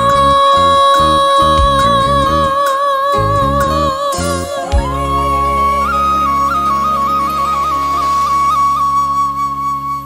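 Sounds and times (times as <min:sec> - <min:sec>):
low sustained backing chords: 0:03.4 - 0:10.0
bamboo flute holding high note: 0:04.1 - 0:10.0.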